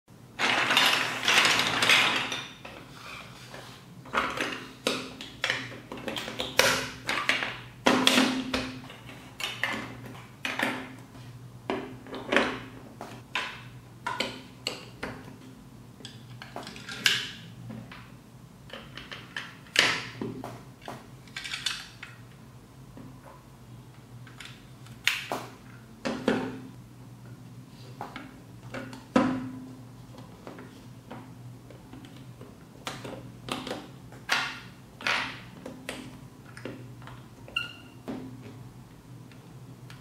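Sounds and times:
plastic blocks clattering: 0.4 - 2.6.

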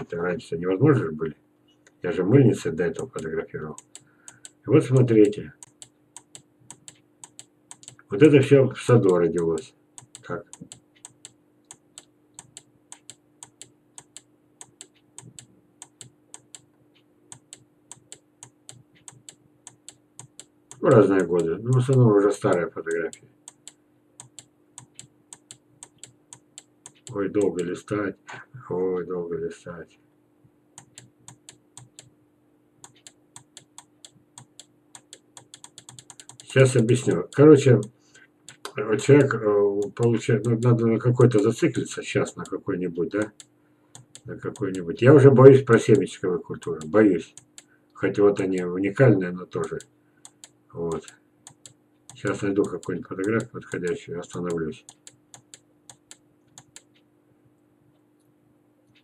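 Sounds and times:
faint steady hum: 0.0 - 59.0
computer keys clicking: 2.9 - 8.1, 9.0 - 16.7, 17.3 - 27.8, 30.8 - 32.1, 32.8 - 37.9, 38.5 - 41.5, 43.1 - 45.0, 45.7 - 47.7, 49.6 - 57.0.

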